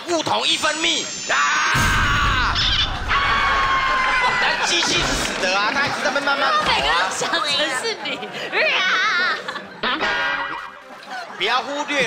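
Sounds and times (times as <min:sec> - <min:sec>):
low rumbling boom: 0:01.8 - 0:05.3.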